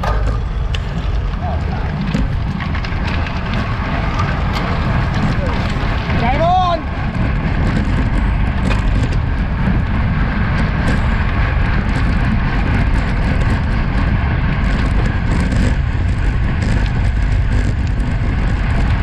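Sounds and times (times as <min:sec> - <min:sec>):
bike tyres rolling on asphalt: 0:00.0 - 0:19.0
wind rushing over microphone: 0:00.0 - 0:19.0.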